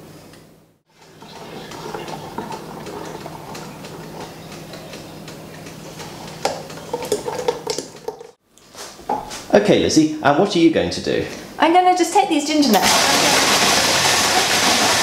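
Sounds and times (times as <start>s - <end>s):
spatula scraping metal pan: 1.0s - 5.1s.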